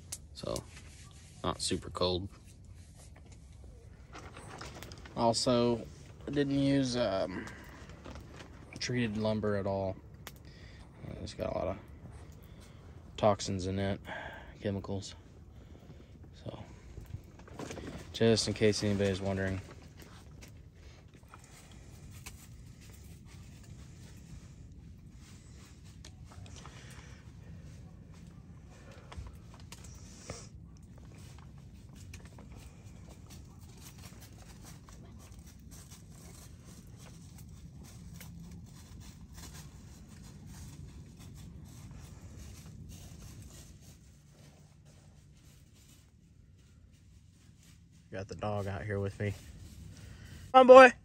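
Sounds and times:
small fire crackling: 0.0 - 51.0.

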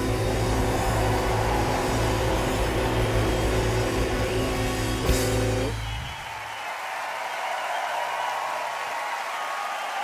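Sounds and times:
live band holding chord: 0.0 - 5.9
audience cheering and clapping: 0.0 - 10.0.

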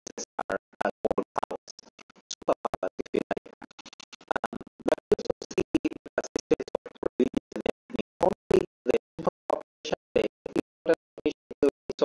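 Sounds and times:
choppy garbled voice: 0.0 - 12.0.

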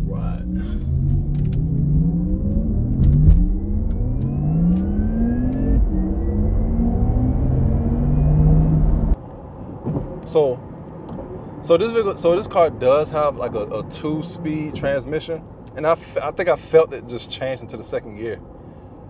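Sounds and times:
electric car accelerating whine: 0.2 - 9.2.

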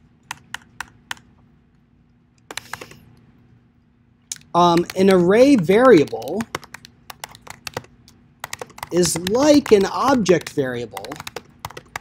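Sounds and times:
computer keyboard keystrokes: 0.3 - 1.3, 2.4 - 3.0, 4.7 - 12.0.

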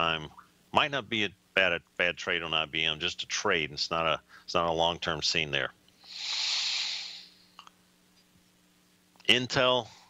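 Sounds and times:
person breathing close to microphone: 6.0 - 7.5.

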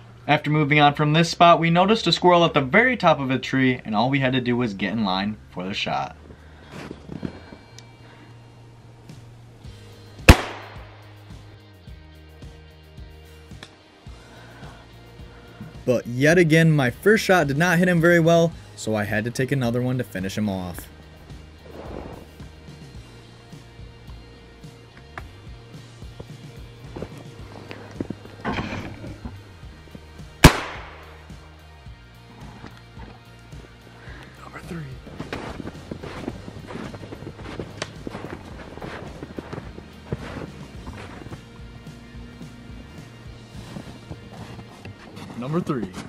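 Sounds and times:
background music: 0.0 - 46.0
shotgun shot: 10.3 - 11.0, 30.4 - 31.2.

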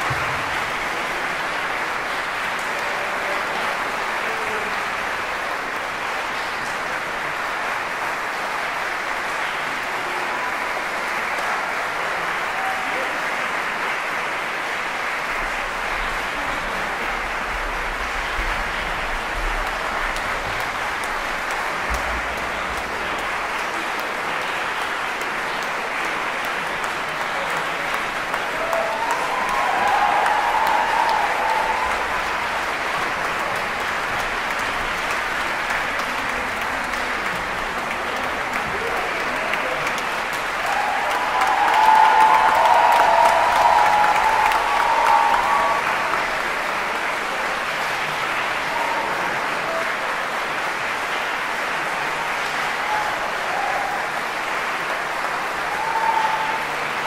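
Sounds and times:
audience applauding: 0.0 - 57.0
voices cheering: 28.2 - 33.5, 38.5 - 47.4, 48.3 - 50.0, 52.2 - 57.0.

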